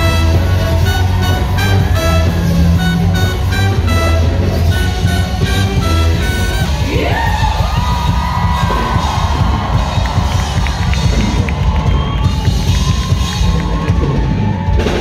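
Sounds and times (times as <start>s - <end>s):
audience cheering and shouting: 0.0s - 15.0s
live pop band playing: 0.0s - 15.0s.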